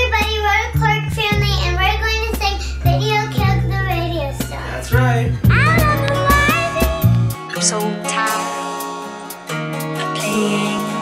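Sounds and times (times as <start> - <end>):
held bass notes: 0.0 - 8.3
girl singing: 0.0 - 8.7, 10.0 - 11.0.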